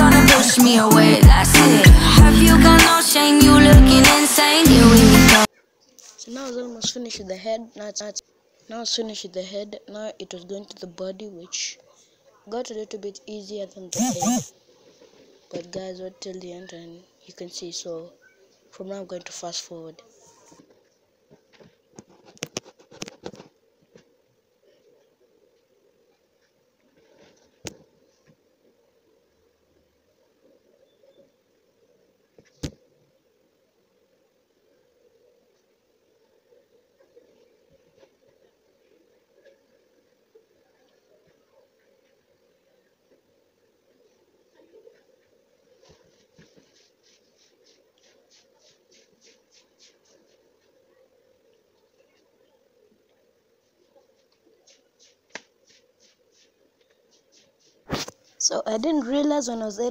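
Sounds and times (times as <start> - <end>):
pencil scratching on paper: 46.0 - 50.8, 54.1 - 58.5.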